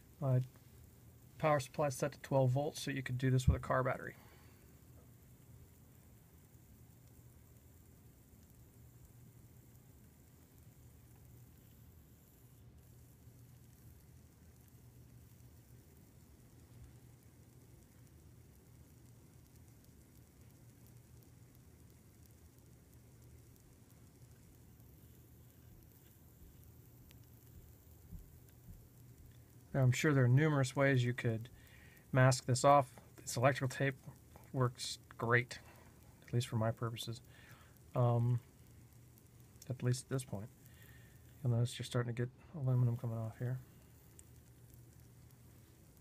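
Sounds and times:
faint bubbling fizz: 0.0s - 46.0s
faint low hum: 0.0s - 46.0s.

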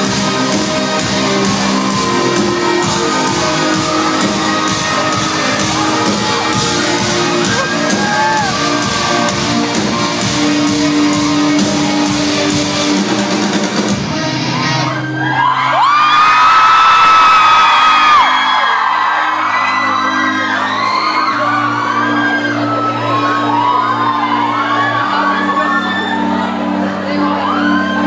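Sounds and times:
live rock band playing: 0.0s - 14.8s
crowd screaming: 0.0s - 28.0s.

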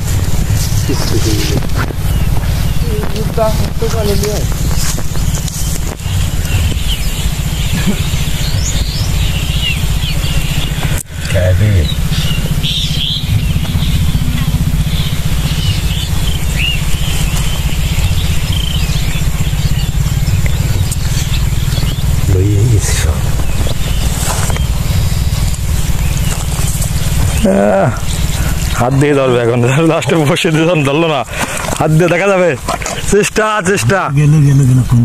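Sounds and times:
bird chirps: 0.0s - 35.0s
steady low rumble: 0.0s - 35.0s.

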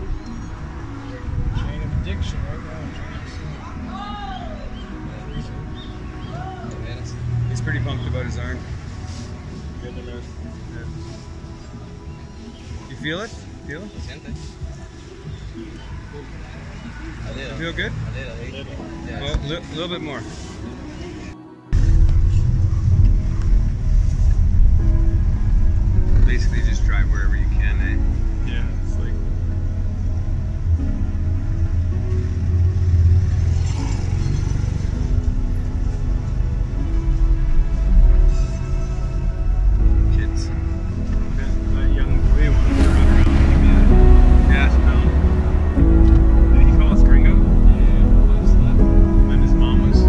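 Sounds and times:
car engine and road rumble: 0.0s - 50.0s
music from car radio: 0.0s - 50.0s.

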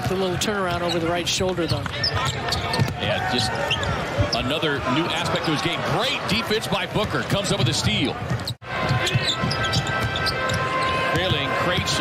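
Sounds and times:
player and arena noise: 0.0s - 12.0s.

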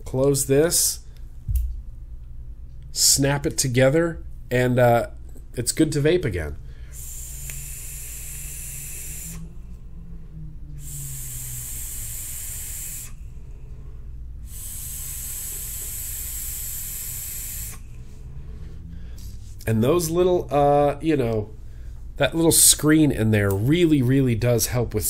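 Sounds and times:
hiss of vapor and airflow: 6.9s - 9.6s, 10.8s - 18.6s.

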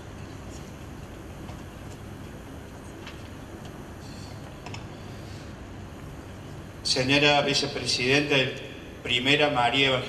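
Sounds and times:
steady low hum: 0.0s - 10.0s
man speaking over microphone: 6.8s - 10.0s.

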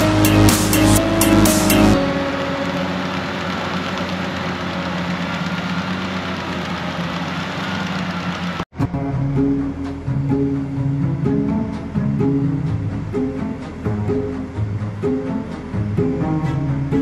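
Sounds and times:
electronic music with a beat: 0.0s - 3.0s
tractor engine running: 0.0s - 17.0s.

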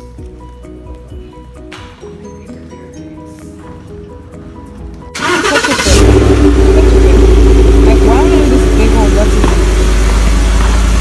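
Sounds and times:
car engine starting and running: 5.1s - 11.0s.

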